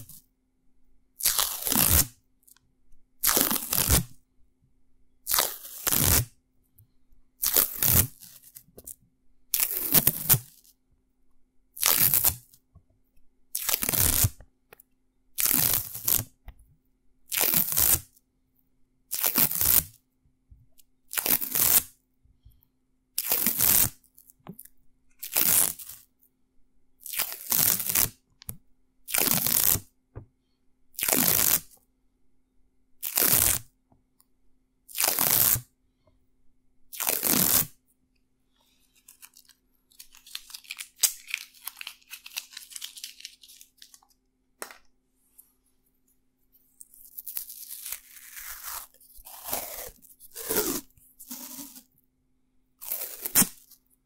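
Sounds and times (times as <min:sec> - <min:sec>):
masking tape ripping off roll: 0:01.2 - 0:02.1, 0:05.3 - 0:06.3, 0:11.8 - 0:12.4, 0:13.6 - 0:14.4, 0:15.4 - 0:16.3, 0:25.2 - 0:26.0, 0:27.0 - 0:28.2, 0:29.1 - 0:29.9, 0:31.0 - 0:31.7, 0:33.0 - 0:33.7, 0:35.0 - 0:35.6, 0:36.9 - 0:37.8, 0:47.1 - 0:51.9, 0:52.8 - 0:53.7.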